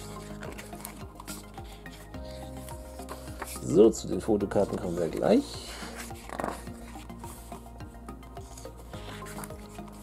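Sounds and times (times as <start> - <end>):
pages rustling and turning: 0.0 - 10.0
soft background music: 0.0 - 10.0.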